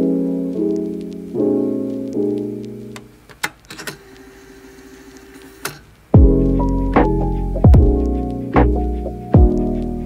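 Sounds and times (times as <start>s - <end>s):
background piano music: 0.0s - 10.0s
sharp clicks: 2.1s - 4.3s, 5.1s - 5.9s.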